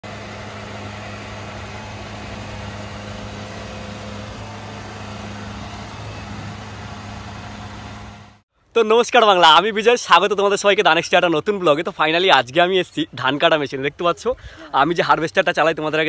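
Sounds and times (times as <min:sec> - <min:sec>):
diesel engine idling: 0:00.0 - 0:08.4.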